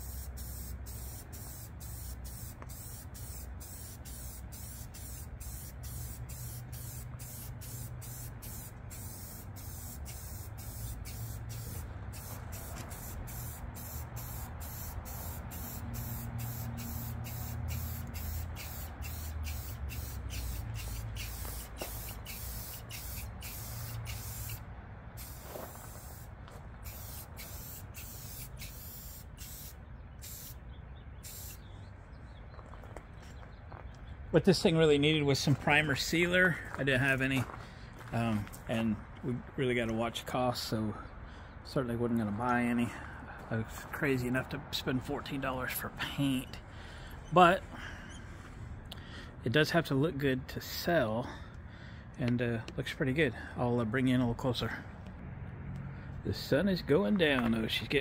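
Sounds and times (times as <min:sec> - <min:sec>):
aerosol spray paint hissing: 0:00.0 - 0:24.6, 0:25.2 - 0:30.6, 0:31.2 - 0:31.6.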